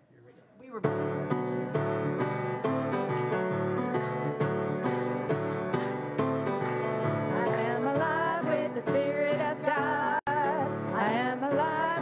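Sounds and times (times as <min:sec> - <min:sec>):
boogie-woogie piano: 0:00.8 - 0:12.0.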